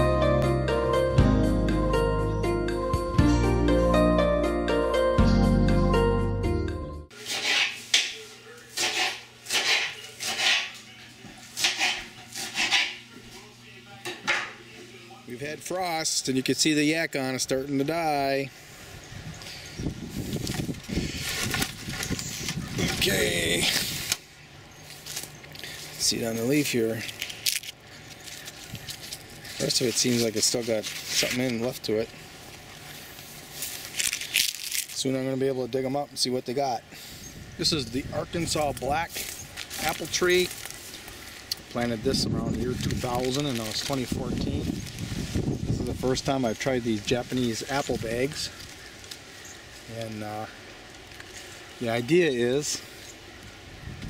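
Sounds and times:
vegetables rustling: 19.4s - 24.1s, 24.8s - 35.3s, 38.4s - 52.8s.

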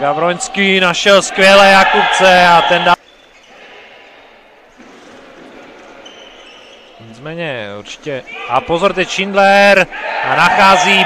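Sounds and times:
murmur of sports hall: 0.0s - 11.0s.

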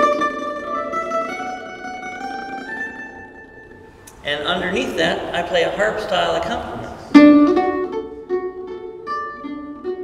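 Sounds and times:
mandolin tremolo melody: 0.0s - 10.0s.

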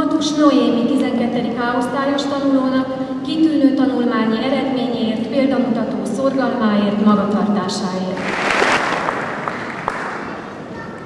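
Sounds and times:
audience applauding: 8.2s - 10.6s.

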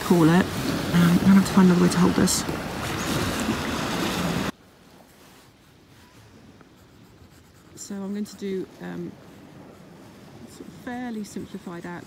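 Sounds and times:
pencil scratching on cardboard: 6.6s - 8.5s.

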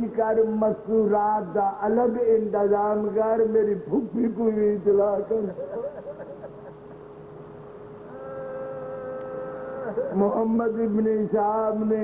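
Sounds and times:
faint sound system hum: 0.0s - 12.0s.

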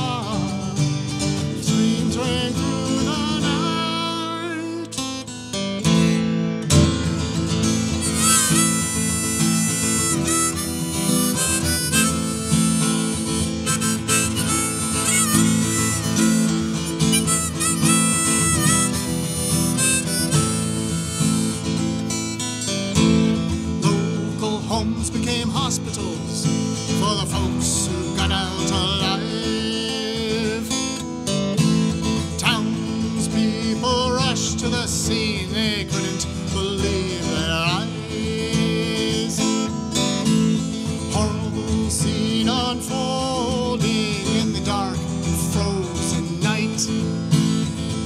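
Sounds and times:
strummed acoustic guitar: 0.0s - 48.0s
harmonica playing: 7.7s - 23.0s.

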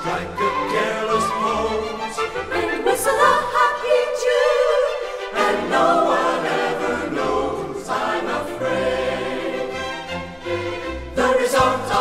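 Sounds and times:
slow orchestral music: 0.0s - 12.0s.

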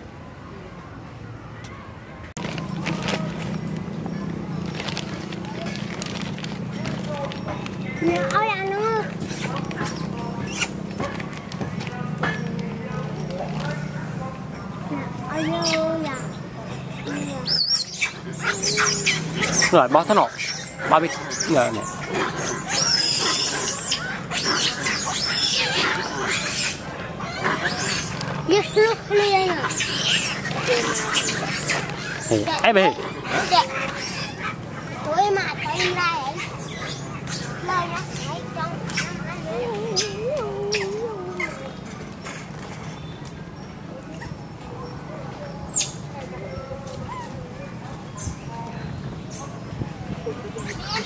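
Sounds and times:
monkeys squeaky calls: 6.6s - 11.0s, 14.6s - 48.4s, 49.3s - 51.0s.

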